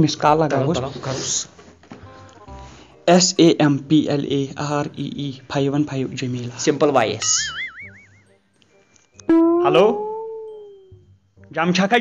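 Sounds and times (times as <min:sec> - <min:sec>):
comedic pitched call: 0:07.4 - 0:08.3, 0:09.3 - 0:11.0.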